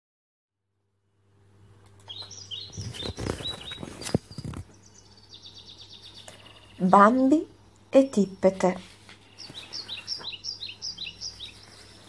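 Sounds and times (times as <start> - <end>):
steady low hum: 0.8 - 12.0
birds chirping and trilling: 1.6 - 12.0
rustling noise: 2.2 - 4.8, 8.4 - 10.3, 11.3 - 12.0.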